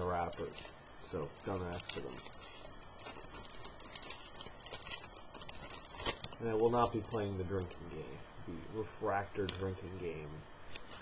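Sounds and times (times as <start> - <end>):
foil wrappers crinkling: 0.0 - 7.9.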